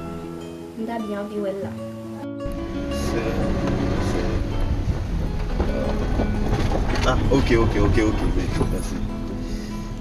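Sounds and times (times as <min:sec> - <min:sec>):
music playing: 0:00.0 - 0:10.0
car engine and road rumble: 0:02.4 - 0:10.0.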